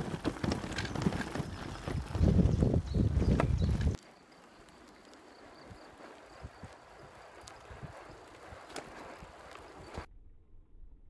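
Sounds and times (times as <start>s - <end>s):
bicycle rolling on asphalt: 0.0s - 10.1s
tyre and wind noise: 0.0s - 10.1s
sharp clicks from bike: 2.9s - 10.1s.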